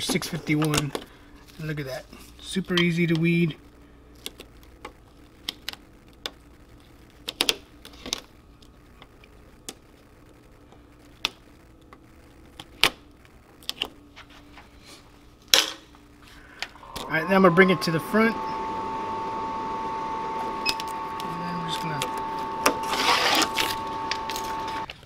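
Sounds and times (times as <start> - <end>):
vinyl sheet rustle: 4.1 - 16.6, 20.0 - 25.0.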